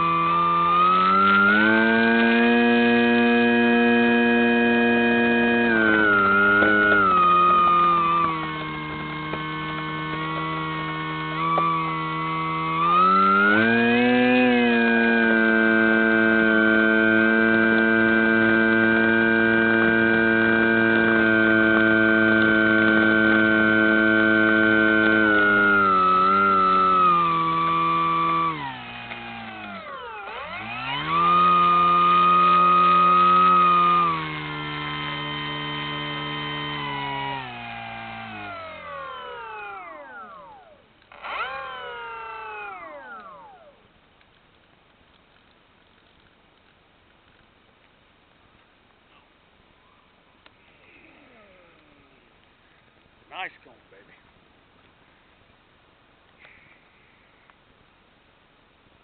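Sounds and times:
model plane electric motor whining: 0.0s - 43.8s, 50.6s - 53.5s.

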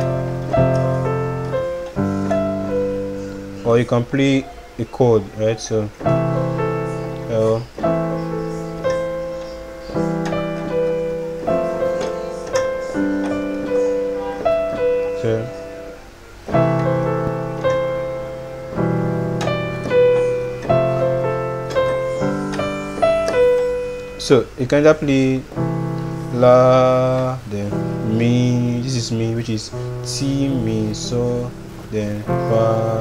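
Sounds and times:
piano chords and melody: 0.0s - 33.0s.

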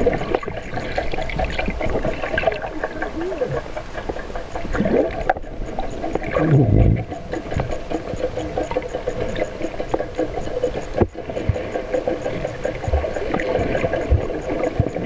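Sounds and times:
boat engine hum underwater: 0.0s - 15.0s
fast high ticking: 0.0s - 15.0s.

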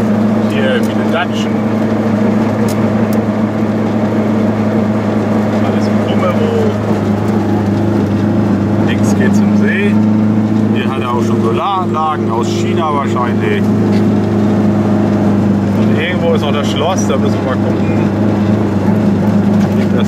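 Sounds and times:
car engine droning: 0.0s - 20.0s.

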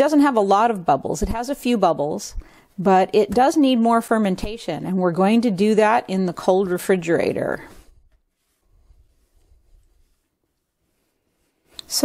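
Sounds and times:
hands rubbing dough on counter: 7.6s - 11.7s.

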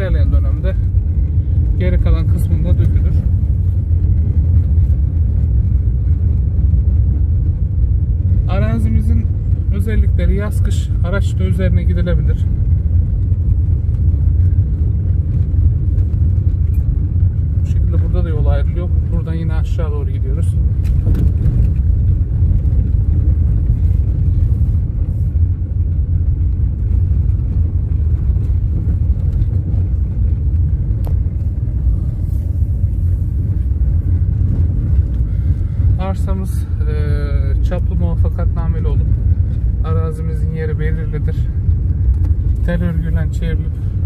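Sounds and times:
car rumbling on gravel road: 0.0s - 44.0s.

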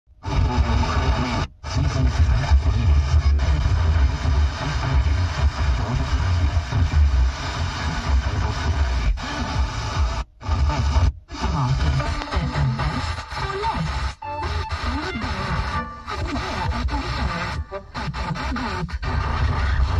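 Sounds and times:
bass-heavy music on car radio: 0.2s - 19.9s.

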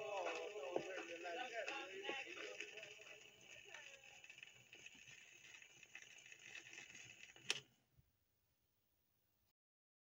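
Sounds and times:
vinyl surface hiss and crackles: 0.0s - 7.7s.

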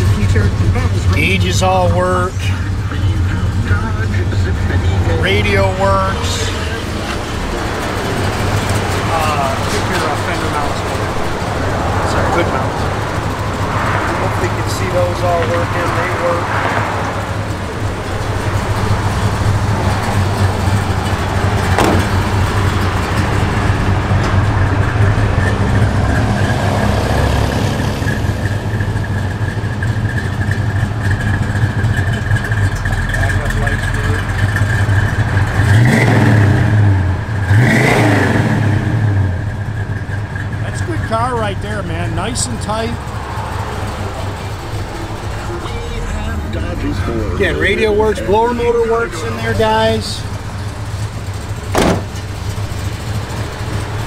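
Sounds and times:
car engine idling: 0.0s - 54.0s
engine revving: 0.0s - 54.0s.

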